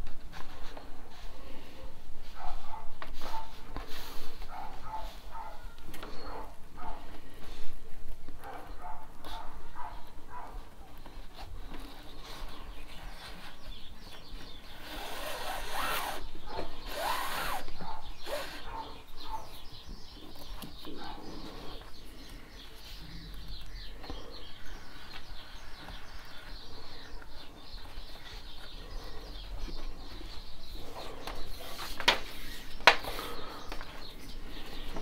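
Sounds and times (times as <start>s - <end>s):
bird calls: 8.5s - 35.0s
paracord rustling and sliding: 14.8s - 16.2s, 16.9s - 18.4s.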